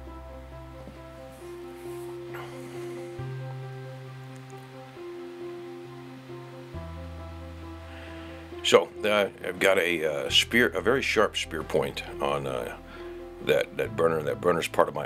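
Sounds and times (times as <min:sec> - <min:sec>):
soft sustained chords: 0:00.0 - 0:15.0.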